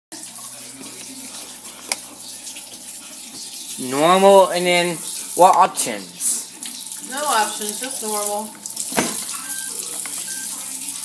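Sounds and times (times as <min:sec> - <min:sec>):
water rushing in dishwasher: 0:00.2 - 0:11.0.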